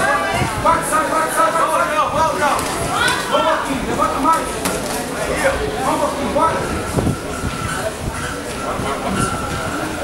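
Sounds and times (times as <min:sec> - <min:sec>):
voices calling out: 0:00.0 - 0:10.0.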